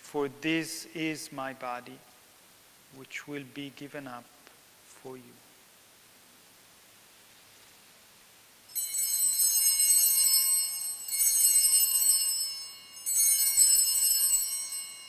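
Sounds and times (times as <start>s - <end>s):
small bells jingling: 8.7s - 15.0s.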